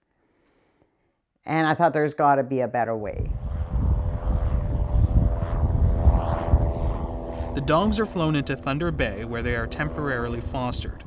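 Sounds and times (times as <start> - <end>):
propeller plane droning: 3.1 - 11.0
wind rumbling on microphone: 3.1 - 11.0.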